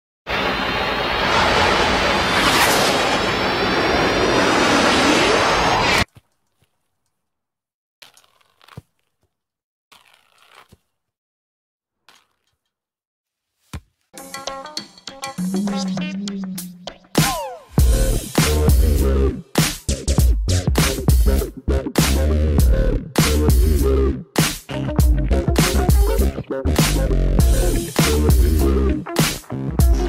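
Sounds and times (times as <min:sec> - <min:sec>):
dense noise burst with high tones: 0:00.3 - 0:05.9.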